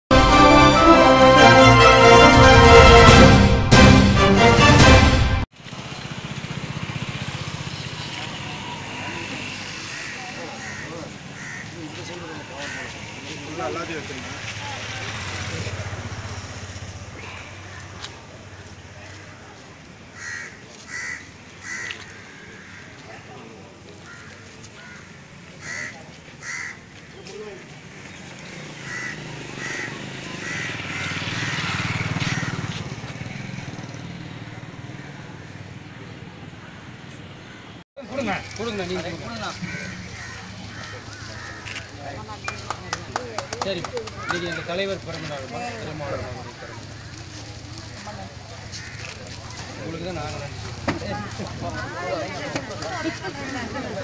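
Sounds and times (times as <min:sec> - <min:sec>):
vehicle passing: 0:05.6 - 0:23.9, 0:25.2 - 0:54.0
people talking quietly: 0:07.7 - 0:28.8, 0:38.0 - 0:54.0
bird calling: 0:08.0 - 0:13.2, 0:24.0 - 0:32.8, 0:39.4 - 0:43.2.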